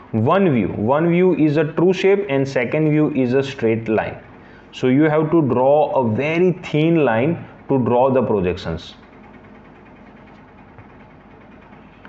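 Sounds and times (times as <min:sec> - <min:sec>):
low background hum and hiss: 0:00.0 - 0:12.0.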